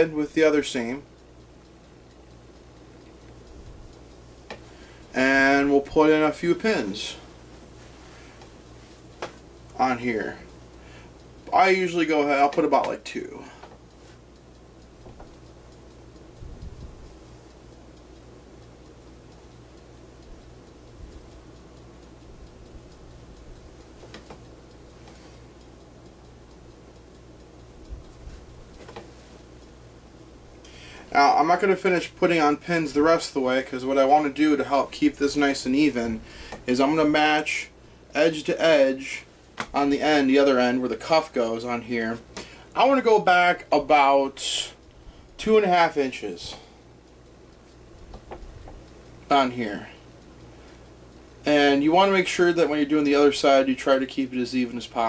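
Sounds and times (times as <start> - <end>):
low steady hum: 0.0 - 55.0
small clicks: 13.6 - 29.8, 46.0 - 53.6.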